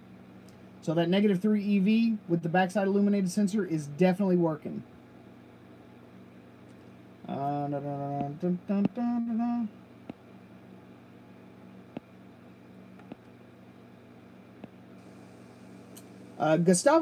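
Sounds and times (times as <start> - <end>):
steady low hum: 0.0 - 17.0
man humming: 7.2 - 9.8.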